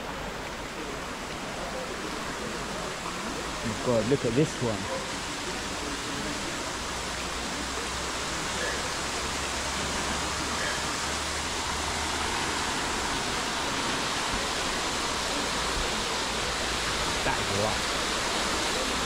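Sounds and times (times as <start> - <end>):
running water rushing: 0.0 - 19.0.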